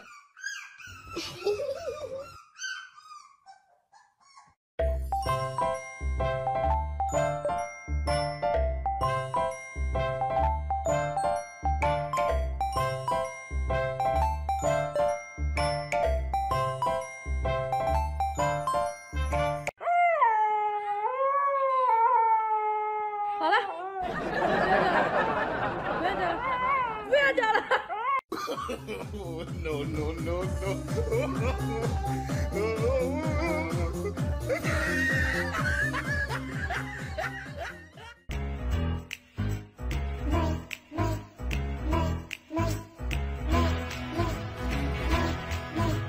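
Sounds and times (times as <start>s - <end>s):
puppy whimpering: 0.0s - 4.6s
chiming music: 4.8s - 19.8s.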